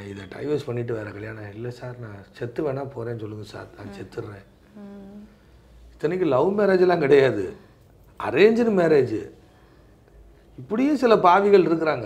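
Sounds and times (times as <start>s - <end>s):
man talking: 0.0s - 4.5s.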